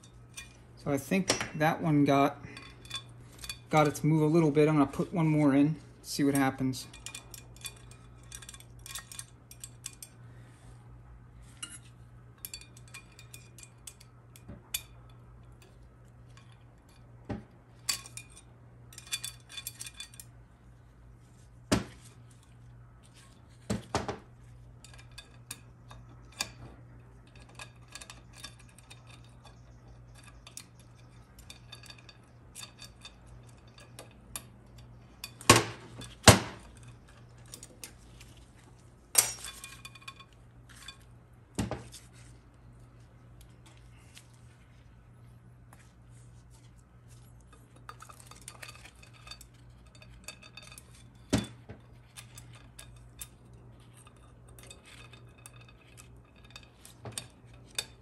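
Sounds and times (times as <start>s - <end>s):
steady low hum: 0.0s - 58.0s
small metal parts clinking on metal: 17.8s - 20.4s.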